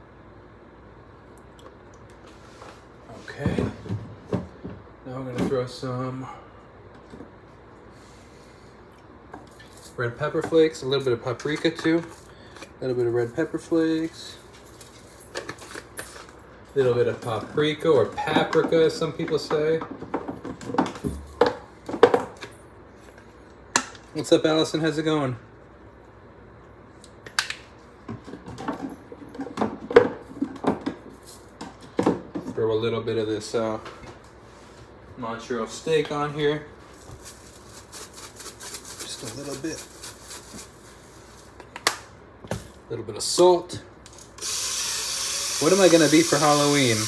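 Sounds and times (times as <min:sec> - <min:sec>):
seasoning rattling in shaker jar: 0:37.2 - 0:40.7.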